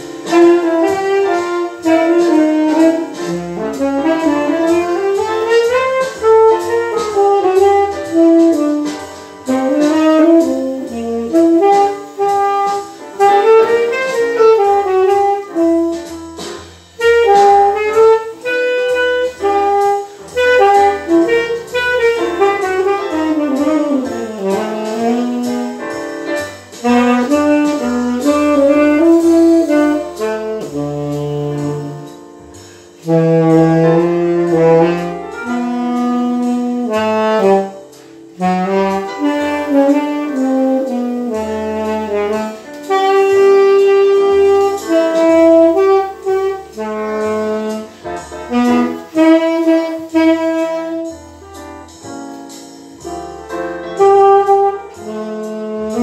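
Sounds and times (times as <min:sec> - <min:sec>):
backing track bass line: 0:00.0 - 0:56.0
saxophone jazz melody: 0:00.0 - 0:56.0.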